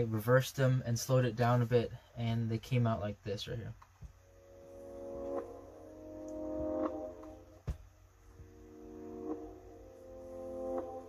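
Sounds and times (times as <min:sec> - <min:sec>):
reversed sustained chords: 0:04.3 - 0:07.6, 0:08.2 - 0:11.0.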